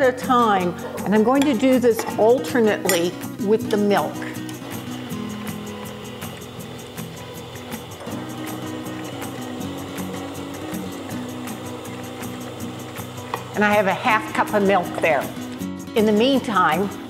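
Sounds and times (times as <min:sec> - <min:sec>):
background music with held notes: 0:00.0 - 0:17.0
stand mixer beating batter: 0:04.6 - 0:15.6.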